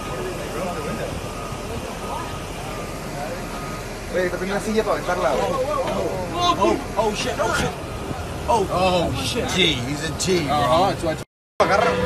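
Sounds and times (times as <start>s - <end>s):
faint voices: 0.0s - 12.0s
low rumble inside a bus: 0.0s - 12.0s.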